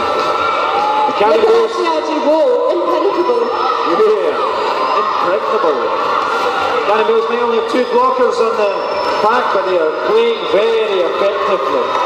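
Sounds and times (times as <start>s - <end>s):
announcers commentating: 0.8s - 12.0s.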